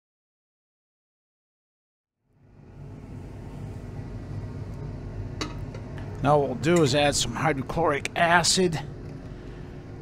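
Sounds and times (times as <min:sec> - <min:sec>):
low machine hum: 0:02.2 - 0:10.0.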